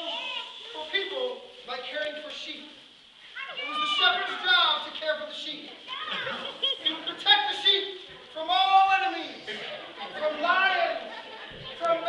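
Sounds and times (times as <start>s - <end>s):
young children talking and calling: 0.0s - 12.0s.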